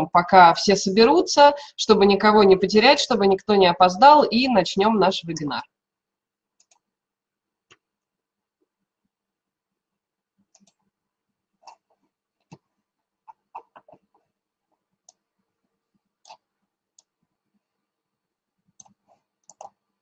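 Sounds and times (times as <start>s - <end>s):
computer keyboard and mouse clicking: 6.6s - 6.8s, 10.5s - 10.8s, 18.7s - 19.8s.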